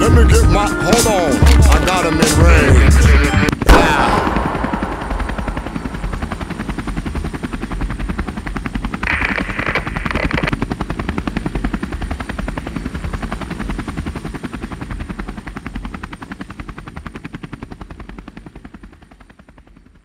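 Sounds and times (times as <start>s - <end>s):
helicopter rotor blades beating: 0.0s - 20.0s.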